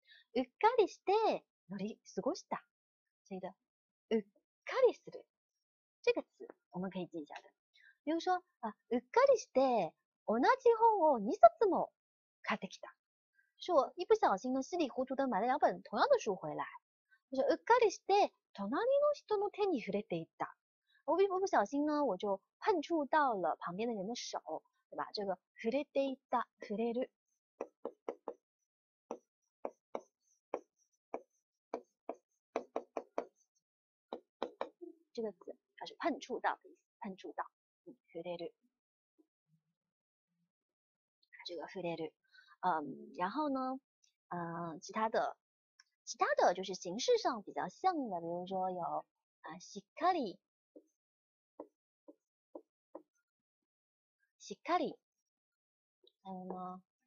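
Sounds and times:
pen tapping on writing board: 0:27.6 - 0:28.4, 0:29.1 - 0:33.4, 0:34.1 - 0:34.8.

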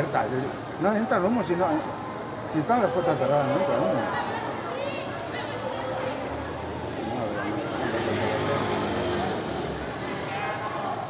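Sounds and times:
distant indistinct voices: 0:00.0 - 0:11.0
street background: 0:00.0 - 0:11.0.

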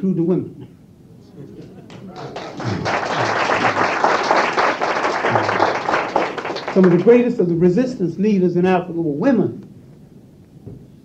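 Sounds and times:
laughter: 0:01.3 - 0:03.8
audience applauding: 0:01.6 - 0:07.4.

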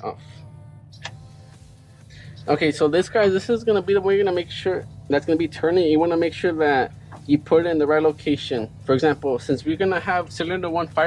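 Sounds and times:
faint low hum: 0:00.0 - 0:11.0.

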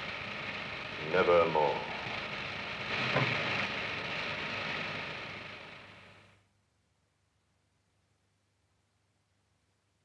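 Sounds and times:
old film soundtrack hiss: 0:00.0 - 0:06.5.

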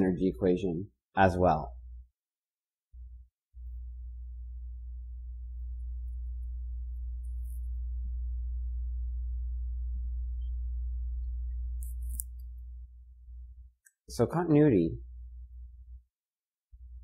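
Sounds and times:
low electrical hum: 0:03.0 - 0:16.1, 0:16.8 - 0:17.0.

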